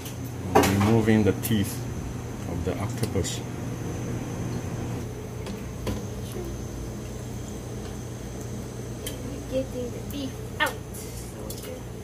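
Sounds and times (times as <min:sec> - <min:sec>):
kitchen ventilation hum: 0:00.0 - 0:12.0.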